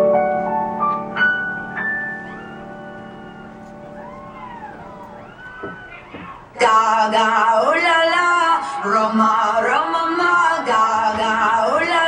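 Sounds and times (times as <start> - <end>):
held piano notes: 0.0 - 6.6
high wavering wail: 2.0 - 6.6.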